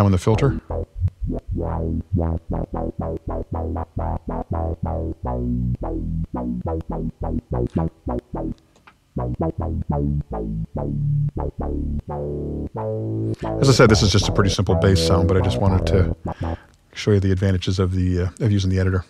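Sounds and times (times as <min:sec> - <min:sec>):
synthesizer bass notes: 0:00.3 - 0:08.6, 0:09.2 - 0:16.6.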